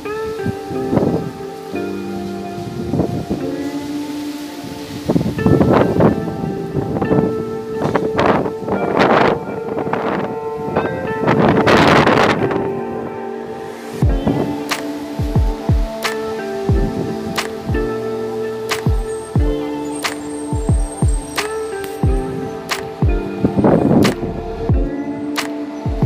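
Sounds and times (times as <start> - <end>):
music with held chords: 0.0 - 26.0
wind buffeting microphone: 0.0 - 26.0.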